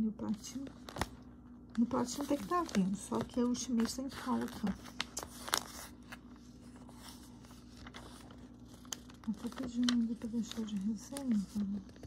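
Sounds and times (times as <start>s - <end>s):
faint steady hum: 0.0s - 12.0s
magazine pages crackling: 0.5s - 12.0s.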